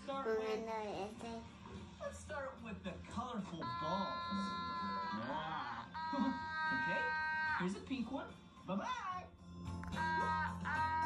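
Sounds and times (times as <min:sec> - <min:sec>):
high held tone: 0:03.6 - 0:07.6
voices: 0:03.6 - 0:07.8.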